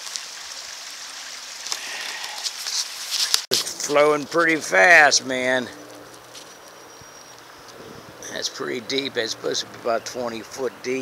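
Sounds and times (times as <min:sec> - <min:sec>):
man speaking: 0:03.8 - 0:05.8, 0:08.2 - 0:11.0.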